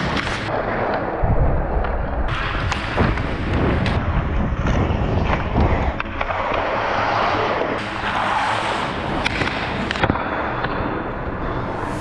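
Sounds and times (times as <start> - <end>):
skate blades scraping ice: 4.6 - 10.7.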